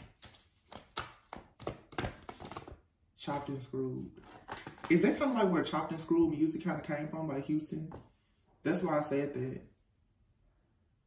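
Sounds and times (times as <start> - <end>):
cards being shuffled: 0.0 - 5.7.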